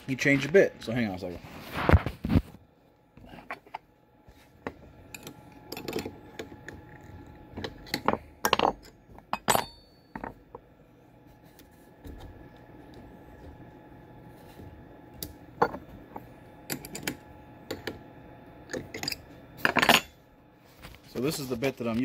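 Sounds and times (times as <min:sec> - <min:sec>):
metal tools clicking and clinking: 0:08.0 - 0:10.3, 0:18.7 - 0:20.1.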